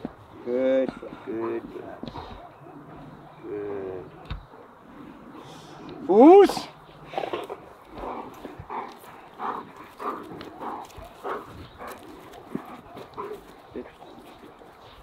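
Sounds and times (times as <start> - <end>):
dog panting: 0.8 - 6.0, 7.0 - 15.0.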